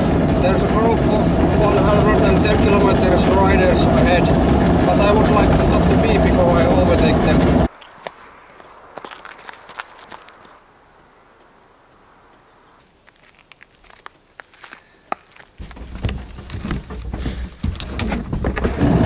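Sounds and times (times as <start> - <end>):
footsteps crunching on gravel: 7.7 - 10.6, 12.8 - 16.9
knocking and rumbling on shell: 15.6 - 19.0.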